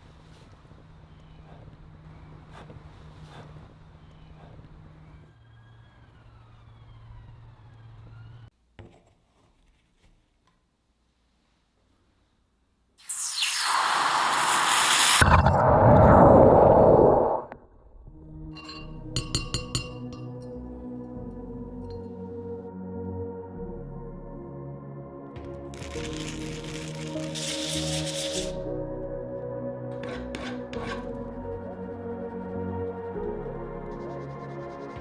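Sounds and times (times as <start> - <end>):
hot metal hissing in water: 13.0 - 15.3, 26.0 - 28.5
background music: 17.9 - 35.0
metal block rubbing on sandpaper: 25.8 - 28.6, 30.0 - 31.1.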